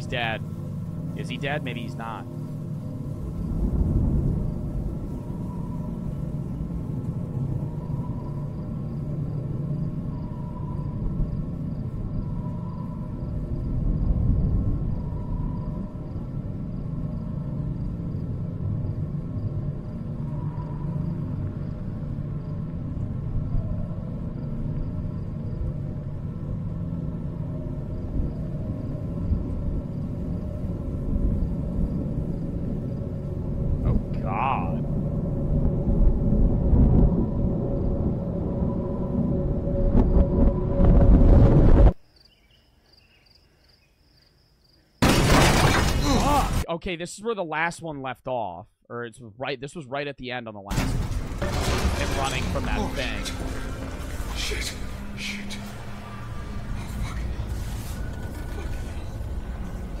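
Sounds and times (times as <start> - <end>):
low rumbling ambience: 0.0 - 42.0, 50.7 - 60.0.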